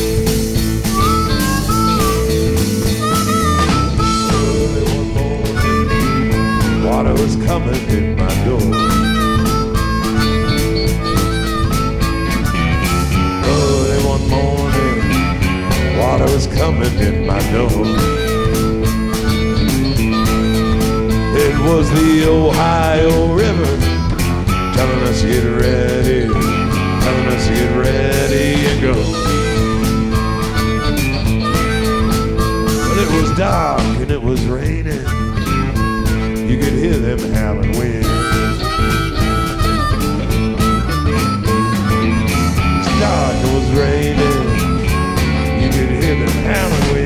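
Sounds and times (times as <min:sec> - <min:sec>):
drum beat: 0:00.0 - 0:47.0
electric guitar: 0:00.0 - 0:47.0
harmonica wailing: 0:00.0 - 0:47.0
person singing: 0:03.0 - 0:47.0.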